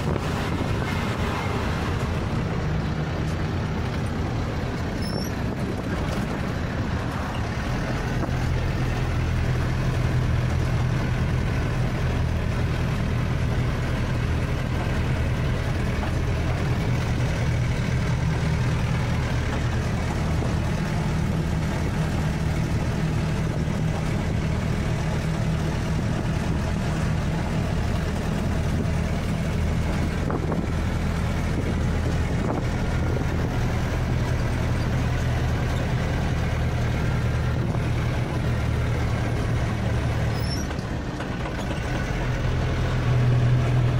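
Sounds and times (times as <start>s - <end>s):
diesel truck engine running: 0.0s - 43.9s
road noise: 0.0s - 43.9s.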